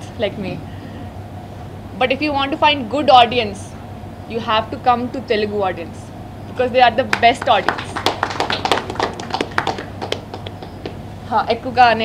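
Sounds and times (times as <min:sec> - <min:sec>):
small group applauding: 0:07.1 - 0:11.0.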